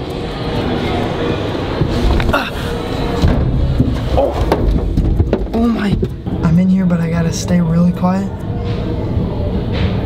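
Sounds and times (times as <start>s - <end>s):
dull knocks: 3.2s - 6.4s
rustling and bumping handling noise: 3.2s - 6.6s.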